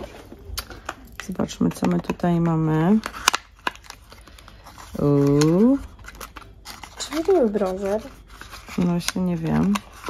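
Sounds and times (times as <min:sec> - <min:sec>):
faint card handling: 0:00.0 - 0:10.0.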